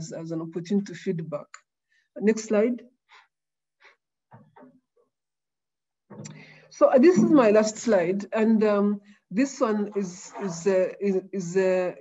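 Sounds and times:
faint breaths into microphone: 0:06.2 - 0:06.8.

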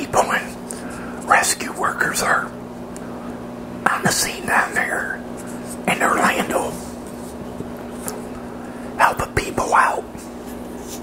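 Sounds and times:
man whispering: 0:00.0 - 0:02.6, 0:03.8 - 0:07.0, 0:08.9 - 0:10.2
steady low hum: 0:00.0 - 0:11.0.

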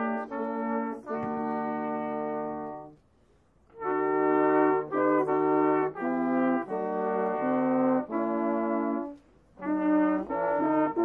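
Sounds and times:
brass ensemble chorale chords: 0:00.0 - 0:11.0.

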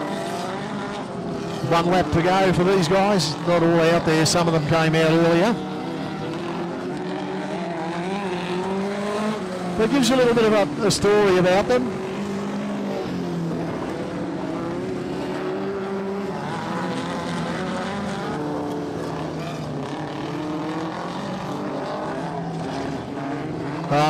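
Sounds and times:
race car engines lapping: 0:00.0 - 0:24.0.

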